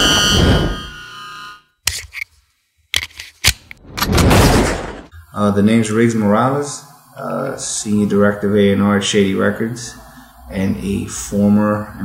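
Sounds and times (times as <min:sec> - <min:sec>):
short high tone: 0:00.0 - 0:01.6.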